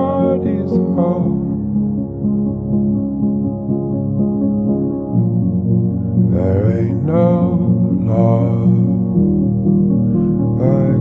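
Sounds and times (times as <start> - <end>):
sustained low chords: 0.0 - 11.0.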